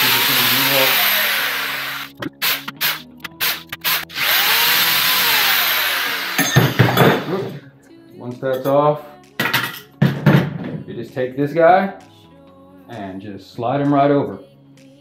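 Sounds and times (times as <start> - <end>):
cordless drill whining: 0.0 - 7.6.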